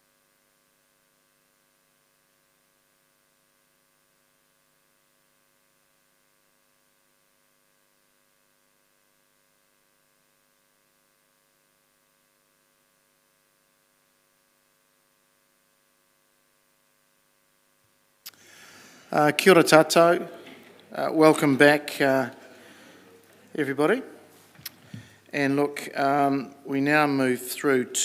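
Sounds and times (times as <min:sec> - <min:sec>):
faint electrical hum: 0:00.0 - 0:28.0.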